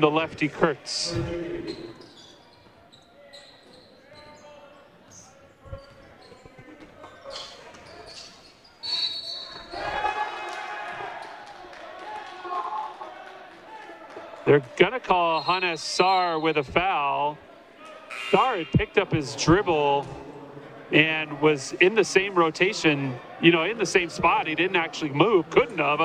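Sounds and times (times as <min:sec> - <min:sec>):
crowd and player voices: 0:00.0 - 0:26.0
referee whistle: 0:08.8 - 0:09.7, 0:15.1 - 0:16.8.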